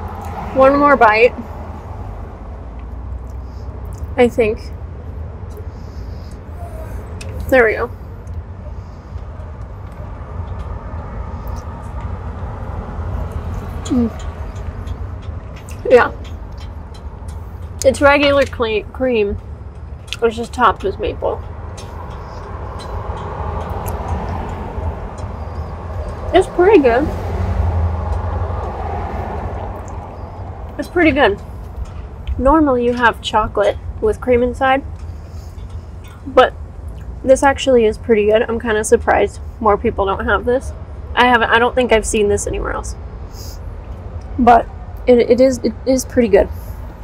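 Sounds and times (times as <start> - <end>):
street traffic rumble: 0.0 - 47.0
vehicle passing: 0.0 - 47.0.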